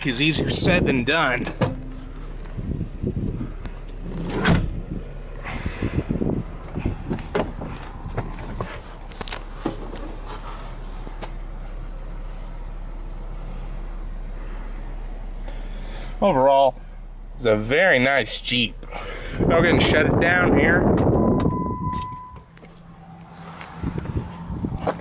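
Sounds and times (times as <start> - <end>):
car engine idling: 0.0 - 25.0
bumps and knocks in a car: 6.6 - 9.0.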